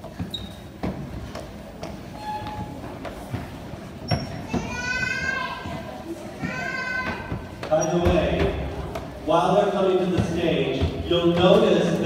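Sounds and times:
children's footsteps on steps: 0.0s - 12.0s
low chatter: 0.0s - 12.0s
child calling out: 4.5s - 5.7s.

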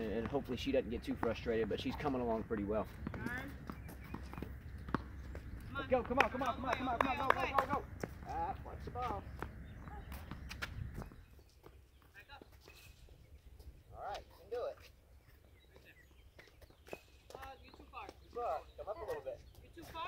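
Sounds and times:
tennis balls bouncing: 0.0s - 11.2s
tennis balls struck by rackets: 0.0s - 11.2s.

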